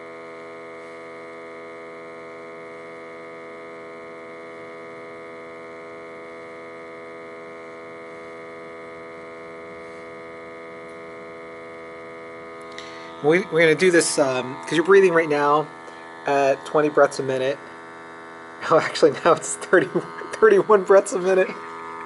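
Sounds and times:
buzzy electrical hum: 0.0s - 22.0s.

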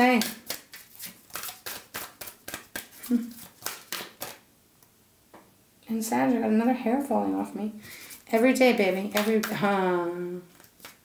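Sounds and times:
cards being shuffled: 0.0s - 4.4s, 10.5s - 11.0s.

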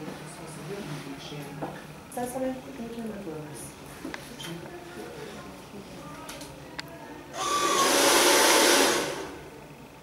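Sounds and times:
faint motor whine: 0.0s - 10.0s
hair dryer blowing: 7.4s - 9.4s.

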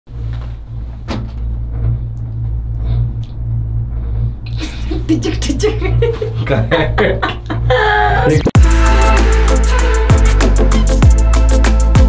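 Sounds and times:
gondola cabin rumble: 0.1s - 8.3s
sharp clunk: 1.1s - 1.5s.

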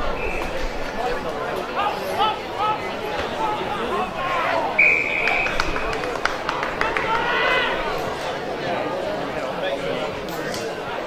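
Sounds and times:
referee whistle blast: 4.7s - 6.0s.

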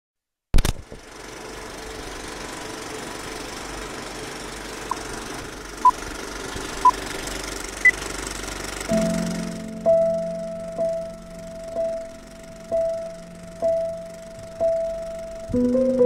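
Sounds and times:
sharp click: 0.6s - 1.0s
film projector running: 0.9s - 9.8s.

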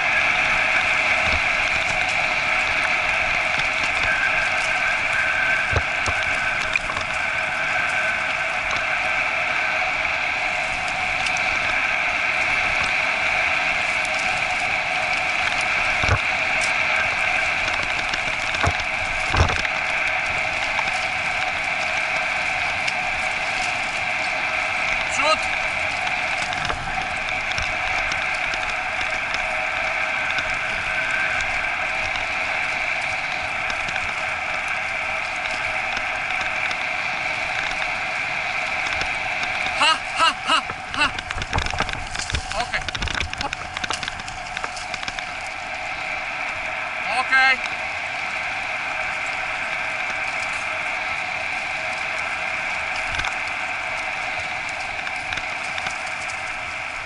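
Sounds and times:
cart rolling and rattling on dirt: 0.0s - 57.0s.

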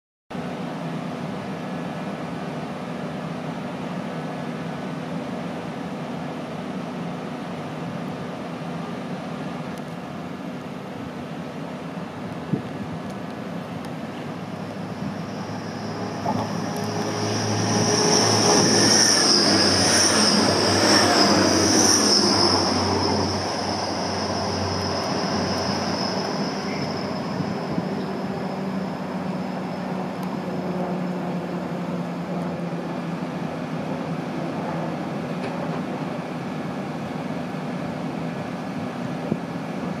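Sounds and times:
diesel train running: 0.3s - 40.0s
train high whine: 0.3s - 40.0s.

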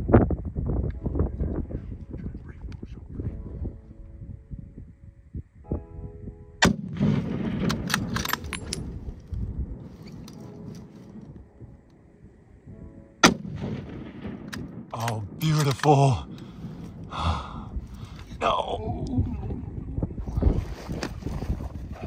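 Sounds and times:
rifle shot: 6.6s - 8.9s, 13.2s - 16.2s.

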